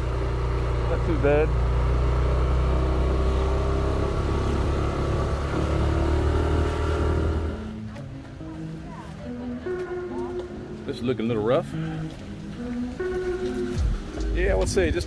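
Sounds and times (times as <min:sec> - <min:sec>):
vehicle engine running: 0:00.0 - 0:07.9
street background: 0:00.0 - 0:15.0.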